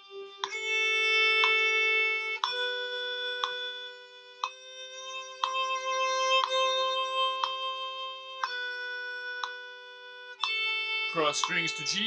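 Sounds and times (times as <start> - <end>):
violin bowing scale: 0.0 - 12.0
metronome clicks: 0.4 - 7.8, 8.4 - 9.8, 10.4 - 12.0.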